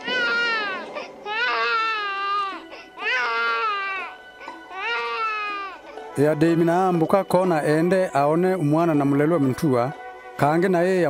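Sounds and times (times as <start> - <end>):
baby crying: 0.0 - 6.2.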